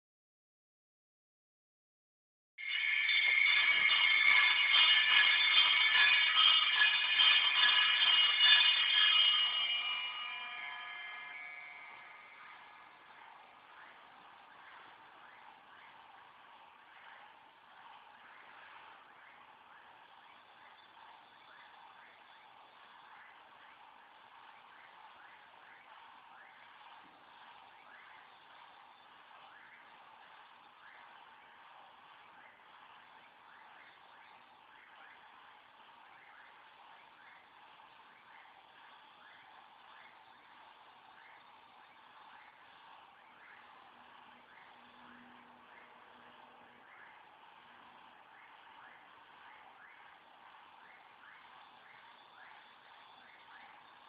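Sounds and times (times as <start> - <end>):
music: 2.6 - 13.7.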